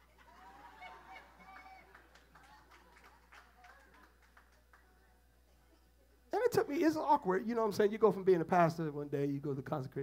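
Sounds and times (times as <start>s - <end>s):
faint laughter: 0.0s - 4.0s.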